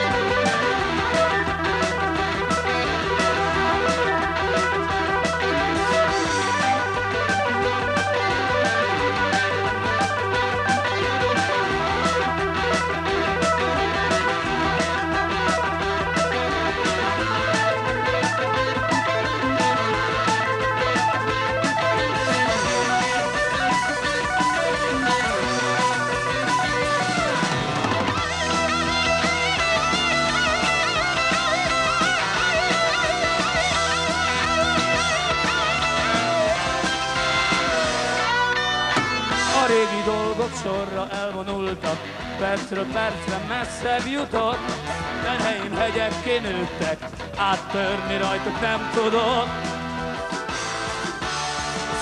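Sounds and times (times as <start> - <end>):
electric bass: 0.0 - 52.0
electric guitar: 0.0 - 52.0
steady drum beat: 0.0 - 52.0.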